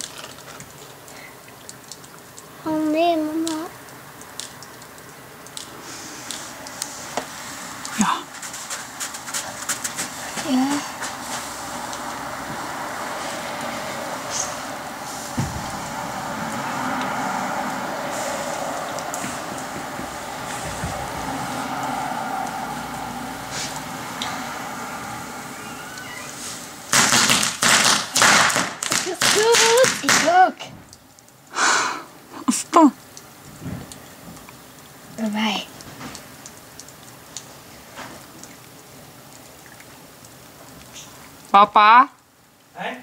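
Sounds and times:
voices calling out: 0:07.5 - 0:26.9
firework hissing: 0:13.0 - 0:21.7, 0:24.7 - 0:29.0
firework cracks and bangs: 0:15.1 - 0:16.0, 0:26.4 - 0:30.5.

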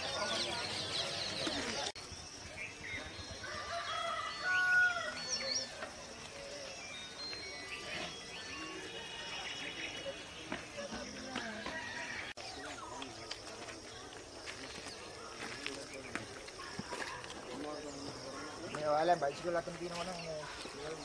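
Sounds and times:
distant voices talking: 0:00.0 - 0:21.0
bird chirps: 0:04.0 - 0:13.5.

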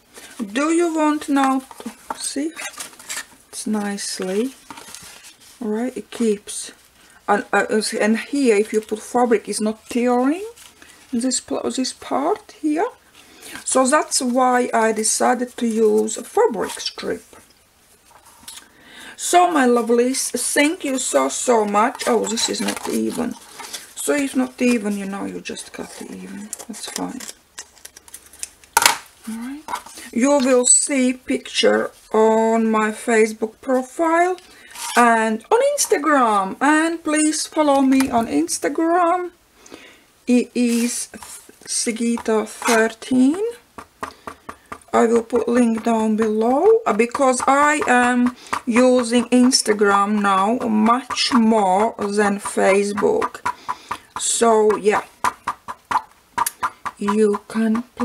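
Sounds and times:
paper rustling: 0:00.1 - 0:05.7, 0:19.6 - 0:30.1, 0:40.6 - 0:43.6.

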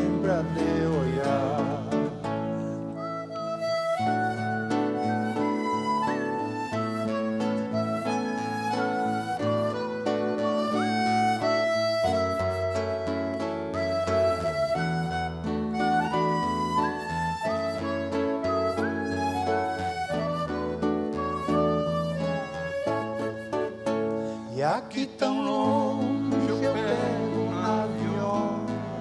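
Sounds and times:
accordion: 0:00.0 - 0:29.0
flute melody: 0:00.0 - 0:29.0
plucked nylon-string guitars: 0:00.0 - 0:29.0.

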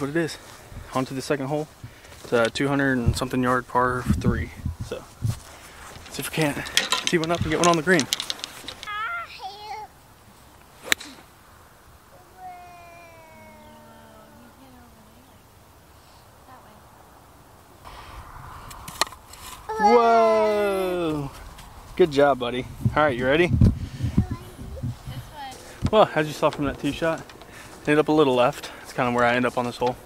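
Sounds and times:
golf club striking ball: 0:10.8 - 0:11.3
voice calling out: 0:12.1 - 0:15.2, 0:19.7 - 0:21.0.

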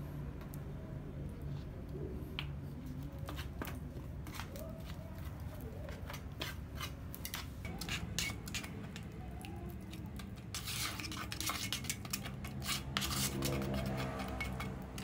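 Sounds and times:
trowel scraping wet mortar: 0:03.2 - 0:09.1, 0:09.7 - 0:15.0.

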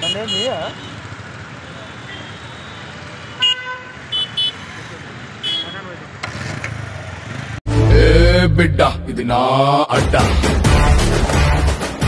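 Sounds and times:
vehicle horns honking: 0:00.0 - 0:01.1, 0:01.7 - 0:06.0
passing vehicles: 0:00.0 - 0:09.0.

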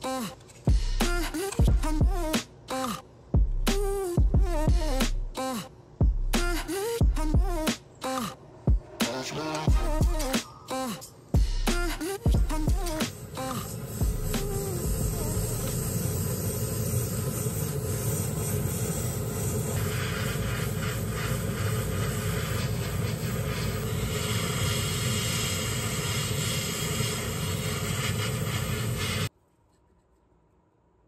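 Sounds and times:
airbrush spraying hiss: 0:00.0 - 0:02.9, 0:08.9 - 0:29.3
spray booth fan running: 0:11.2 - 0:29.3.

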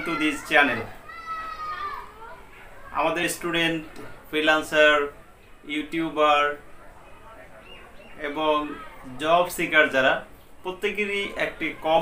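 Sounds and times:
child calling out: 0:00.0 - 0:02.5.

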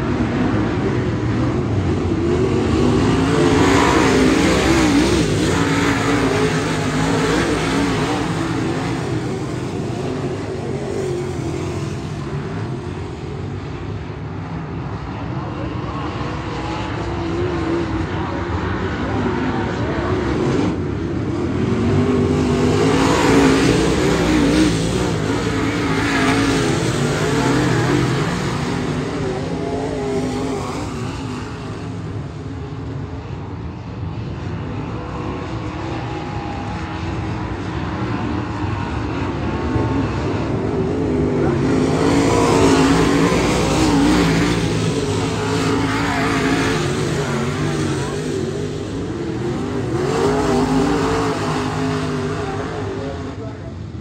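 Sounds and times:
race car engines racing: 0:00.0 - 0:54.0.

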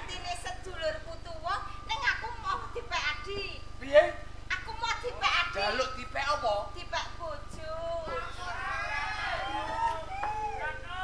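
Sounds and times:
steady low hum: 0:00.0 - 0:11.0
voices talking: 0:04.5 - 0:11.0.

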